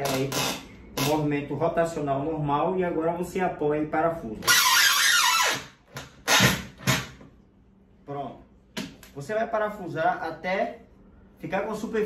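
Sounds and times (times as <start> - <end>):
drill driving screw into wood: 4.5 - 7.2.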